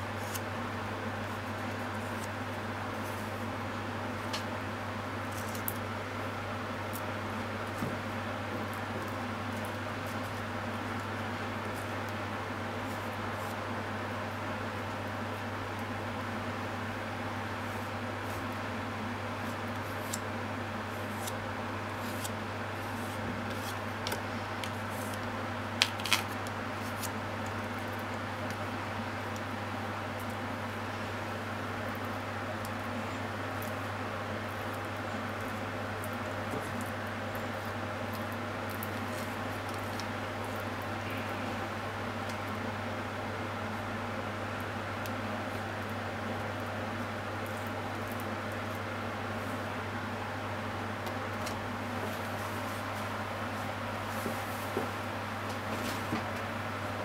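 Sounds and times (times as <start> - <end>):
steady machine hum: 0.0 - 57.0.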